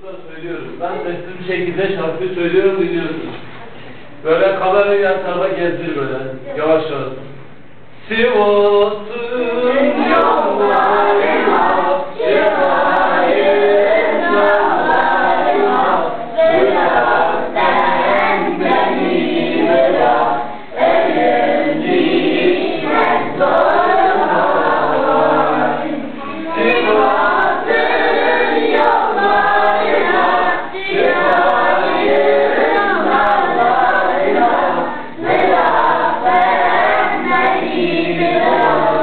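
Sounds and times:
children singing: 9.7 - 39.0.

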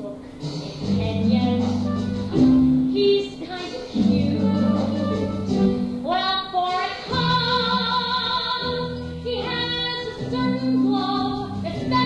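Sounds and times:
instrumental accompaniment: 0.0 - 12.0.

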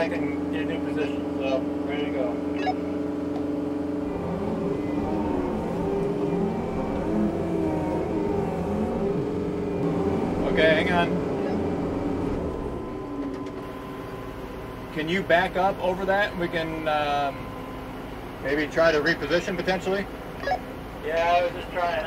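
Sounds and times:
tractor diesel engine under load: 0.0 - 22.0.

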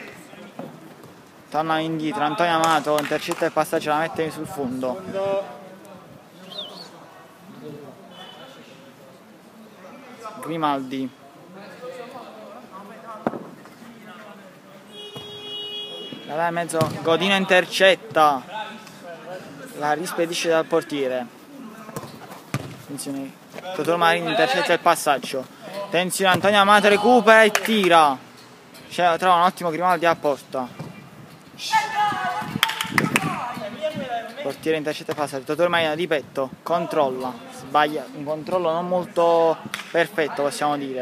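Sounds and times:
football kicked: 16.8 - 17.1, 22.0 - 22.9
distant shouts of players: 31.6 - 34.2.

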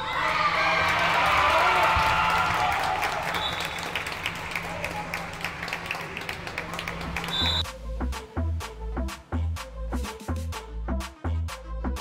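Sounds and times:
scattered clapping: 0.8 - 7.6
short high whistle: 7.3 - 7.7
electronic music with heavy beat: 7.6 - 12.0.

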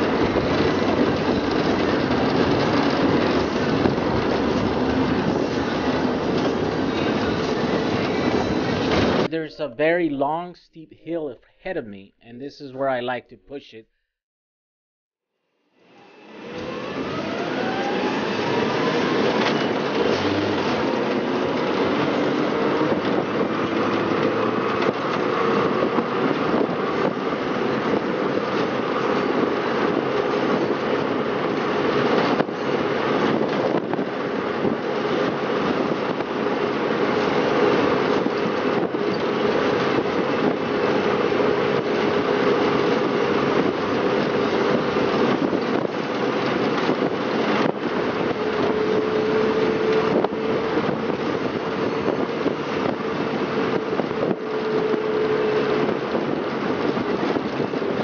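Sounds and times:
road and wind noise: 0.0 - 9.4, 15.8 - 58.0
electric motor whine: 15.7 - 19.4.

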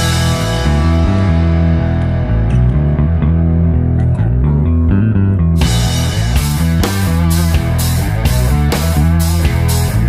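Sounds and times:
heavy bass guitar line: 0.0 - 10.0
rock music: 0.0 - 10.0.

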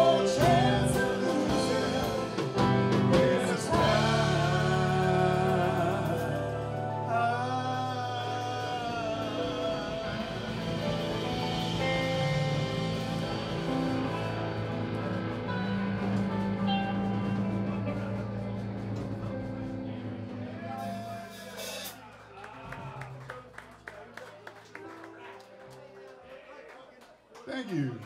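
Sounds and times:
live rock band: 0.0 - 23.2.

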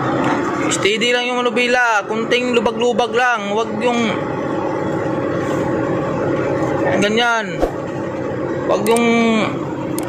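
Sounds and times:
truck engine drone: 0.0 - 6.9.

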